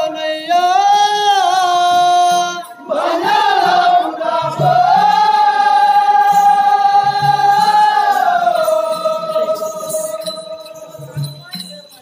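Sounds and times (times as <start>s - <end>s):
person singing into microphone: 0.0s - 11.6s.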